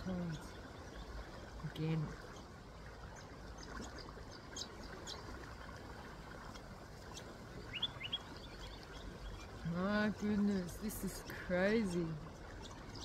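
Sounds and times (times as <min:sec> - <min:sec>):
river rushing softly: 0:00.0 - 0:13.0
bird chirps: 0:07.1 - 0:09.6.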